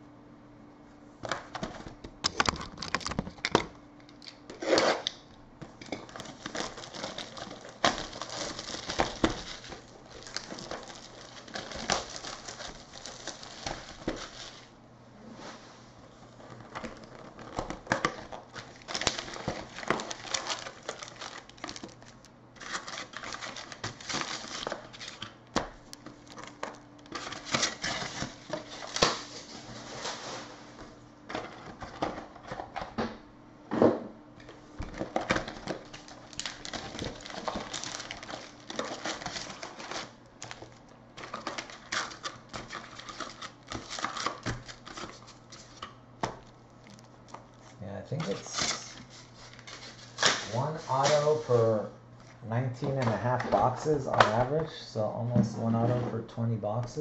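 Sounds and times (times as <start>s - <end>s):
card packs crinkling: 5.6s - 14.8s, 16.2s - 30.5s, 31.2s - 33.0s, 34.7s - 55.0s
cardboard rustling and tearing: 6.0s - 14.7s, 16.2s - 30.6s, 34.9s - 51.7s.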